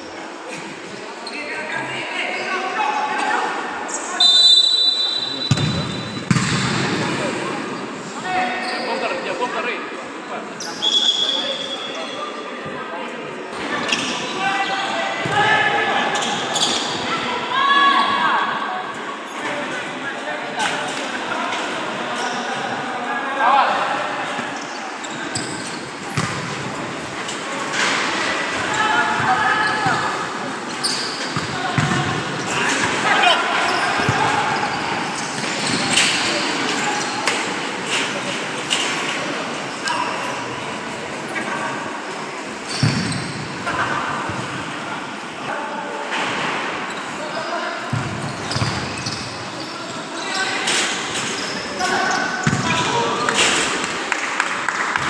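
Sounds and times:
ball kicked and bouncing on court: 5.5 - 6.9, 42.8 - 43.2.

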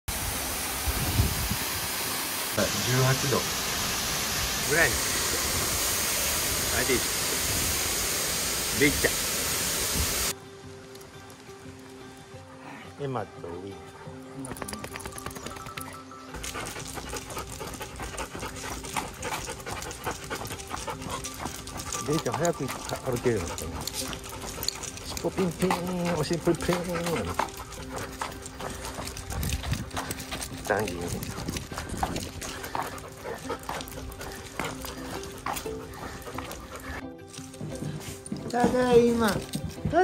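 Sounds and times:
waterfall rushing into pool: 0.1 - 10.3
dog panting: 16.3 - 40.0.

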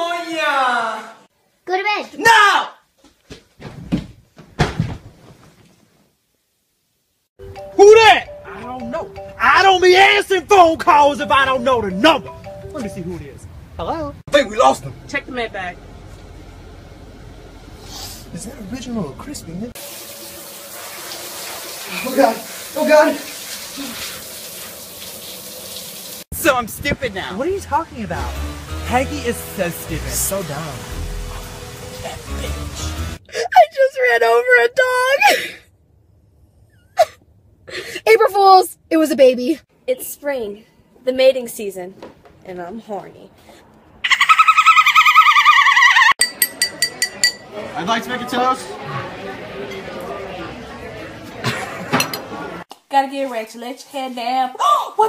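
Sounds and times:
high warbling trill: 7.4 - 14.6.

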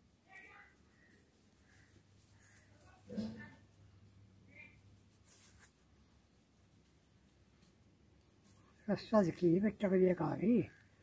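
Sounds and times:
rope strands rustling: 4.5 - 11.0.

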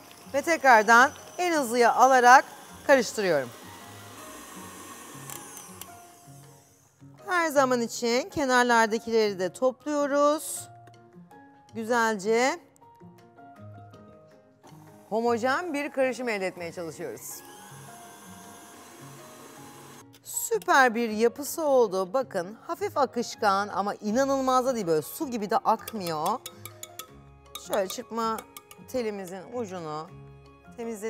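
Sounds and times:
stand mixer motor whine: 0.0 - 6.2, 16.0 - 20.0.

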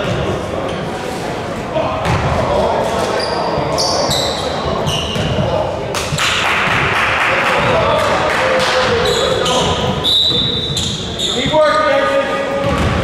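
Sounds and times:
shoe squeaks: 3.0 - 5.4, 9.0 - 11.9
voices talking: 7.2 - 12.6
basketball bouncing on hardwood floor: 12.6 - 13.0.

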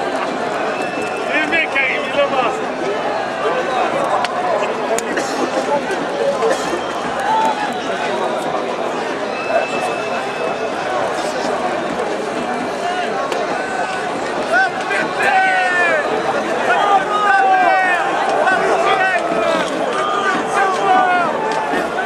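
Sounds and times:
stadium crowd shouting: 0.0 - 22.0
high shouts: 13.6 - 22.0.

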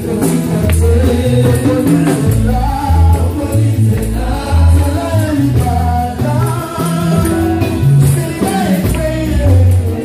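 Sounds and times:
bass line: 0.0 - 10.0
choir singing gospel song: 0.0 - 10.0.

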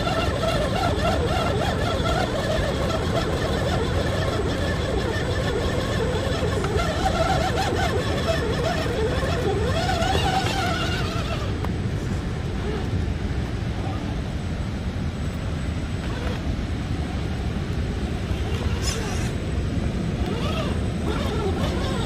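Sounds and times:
toy car motor and gears whining: 0.0 - 11.7, 12.4 - 13.0, 16.0 - 16.5, 18.1 - 22.0.

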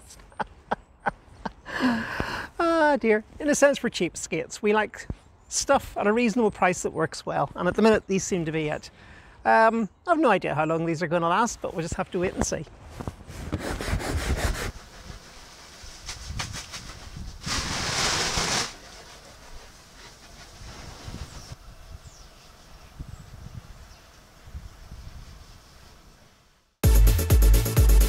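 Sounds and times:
wind buffeting microphone: 16.0 - 18.0, 20.5 - 25.6.

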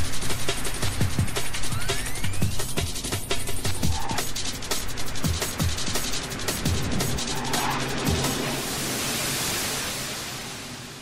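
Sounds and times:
electronic music: 0.0 - 8.6
steady rushing hiss: 0.0 - 11.0.

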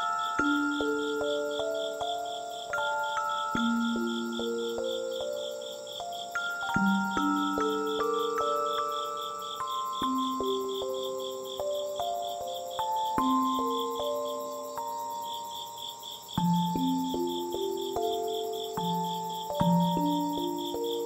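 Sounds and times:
crickets chirping: 0.0 - 21.0
slow gentle background music: 0.0 - 21.0.

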